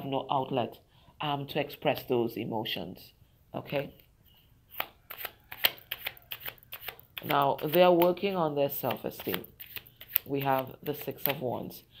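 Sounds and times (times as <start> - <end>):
cards being shuffled: 4.7 - 11.5.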